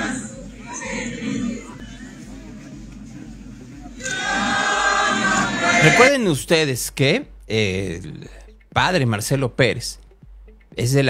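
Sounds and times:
crowd singing a hymn: 0.0 - 6.1.

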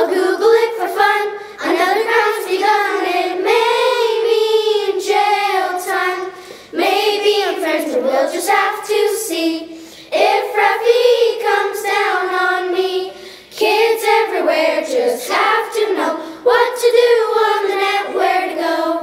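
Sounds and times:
children singing: 0.0 - 19.0.

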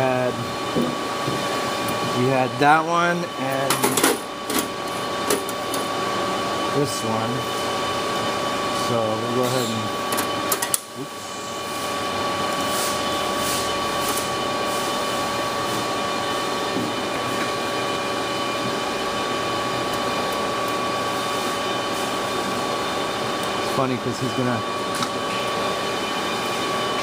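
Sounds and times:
mechanical hum with high whine: 0.0 - 27.0.

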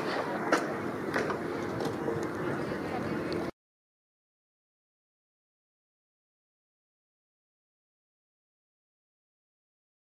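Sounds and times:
sports ground background noise: 0.0 - 3.5.

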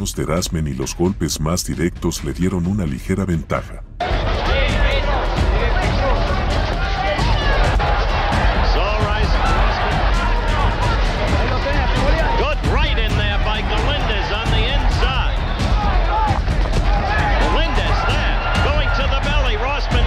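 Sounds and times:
person speaking: 0.0 - 3.9
background music: 0.0 - 20.0
arena crowd hubbub: 4.0 - 20.0.

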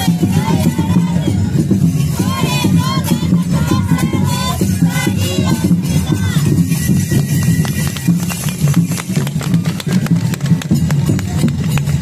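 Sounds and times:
drums: 0.0 - 12.0.

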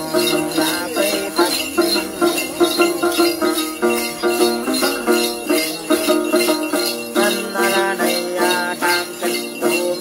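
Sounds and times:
lute plucked rhythmically: 0.0 - 10.0
small bells jingling: 0.0 - 10.0.

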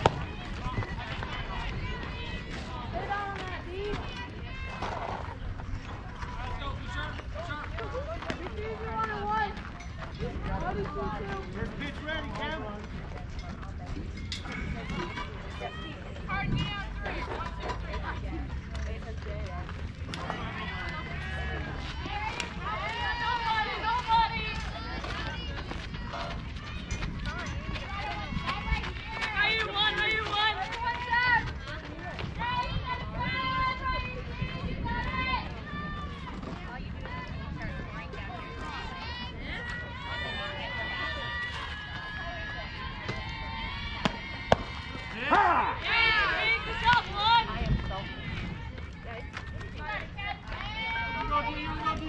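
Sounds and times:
distant players calling and chanting: 0.0 - 52.0.

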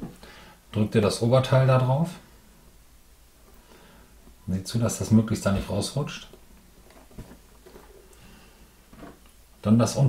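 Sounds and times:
rubber tyre handling sounds: 6.8 - 8.1, 8.9 - 9.3.

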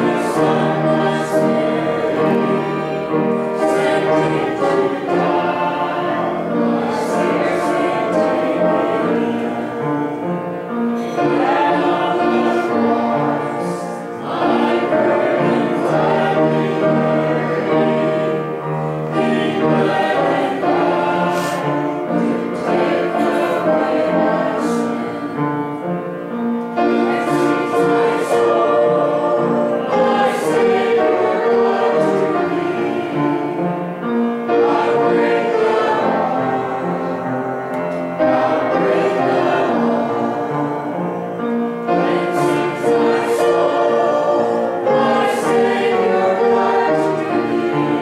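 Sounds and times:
congregation singing a hymn: 0.0 - 48.0
keyboard accompaniment: 0.0 - 48.0.

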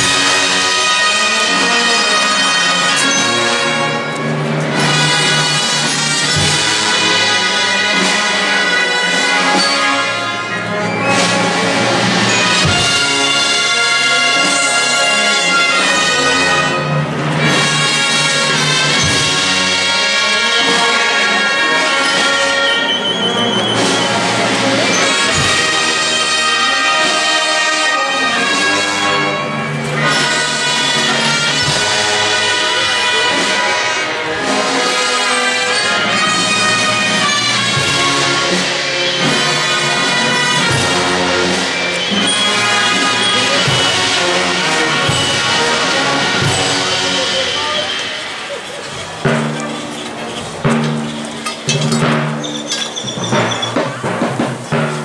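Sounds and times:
brass band playing funeral march: 0.0 - 55.0
low drum beats: 11.5 - 20.4, 42.4 - 55.0.

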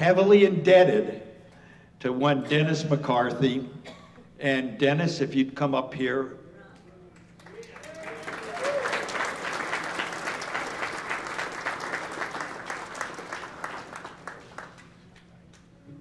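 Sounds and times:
audience applauding: 7.4 - 15.3.

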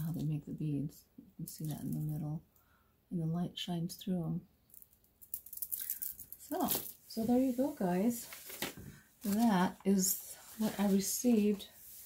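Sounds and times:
beads clicking and rattling: 4.7 - 7.1.

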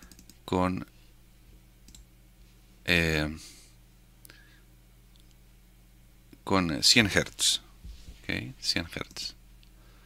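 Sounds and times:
computer mouse clicks: 0.0 - 0.4, 1.9 - 2.1
low steady hum: 0.0 - 10.0
person speaking: 6.4 - 9.4.

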